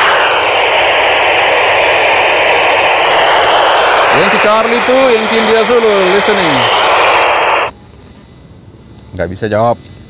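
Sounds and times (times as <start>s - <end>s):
radio receiver hiss: 0.0s - 8.2s.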